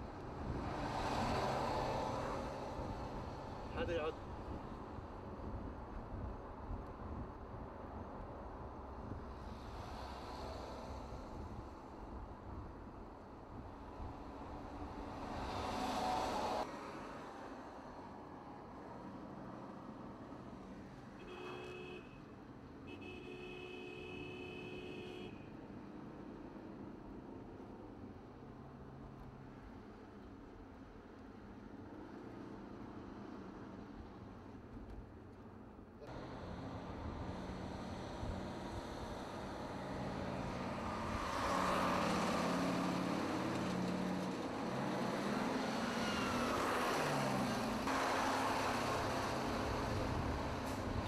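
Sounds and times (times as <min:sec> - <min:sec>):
heavy trucks rumbling on road: 0:36.0 - 0:51.0.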